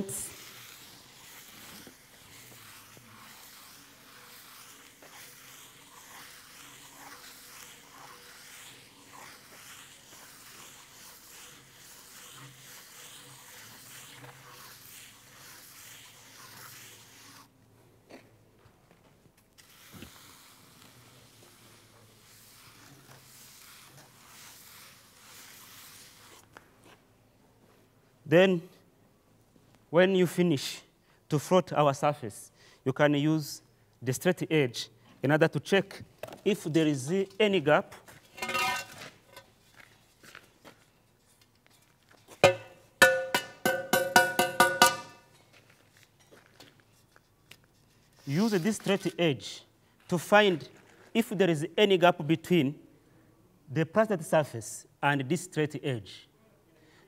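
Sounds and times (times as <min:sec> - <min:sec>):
float scraping plaster: 0:00.0 - 0:17.5, 0:19.6 - 0:26.6, 0:38.0 - 0:45.2.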